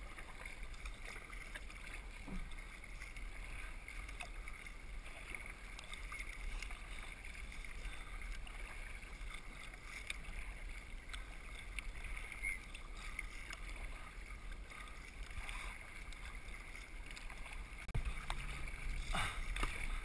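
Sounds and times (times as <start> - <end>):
water lapping off paddle blades: 0.0 - 20.0.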